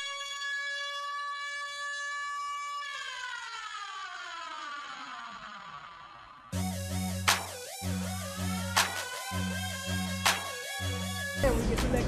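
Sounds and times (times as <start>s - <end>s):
buzzy electronic tone sliding down: 4.3s - 11.4s.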